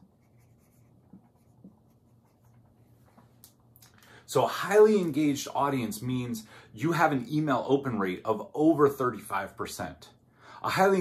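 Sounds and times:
marker writing on whiteboard: 0:00.0 - 0:02.8
low steady room hum: 0:00.0 - 0:11.0.

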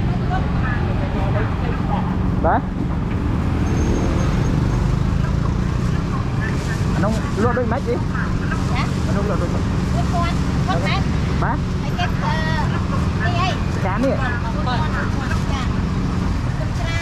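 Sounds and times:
people's voices: 0:00.0 - 0:02.8, 0:04.9 - 0:17.0
low rumble of motor traffic: 0:00.0 - 0:17.0.

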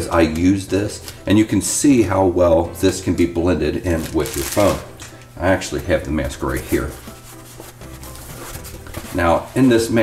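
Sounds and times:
hands rubbing foam mask: 0:06.4 - 0:10.0.

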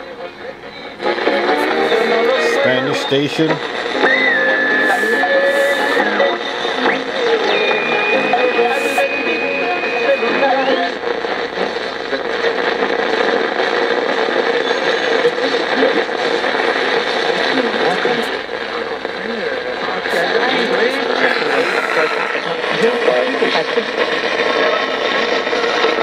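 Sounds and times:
broadcast talk and music: 0:00.0 - 0:26.0
radio tuning between stations: 0:00.0 - 0:26.0
high radio whistle: 0:00.6 - 0:11.9, 0:14.4 - 0:15.4.

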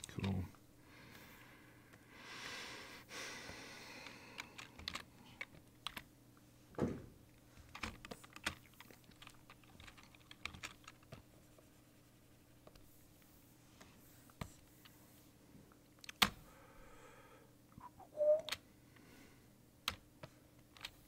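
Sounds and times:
faint steady hum: 0:00.0 - 0:21.0
keyboard keys clicking: 0:04.4 - 0:06.0, 0:07.7 - 0:11.2.

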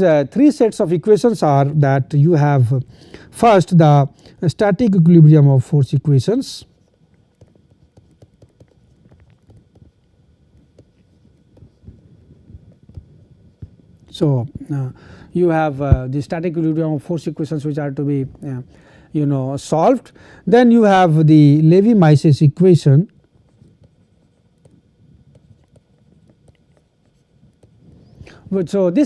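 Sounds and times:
room hum: 0:00.0 - 0:29.0
stylus tapping on tablet: 0:07.1 - 0:13.8.

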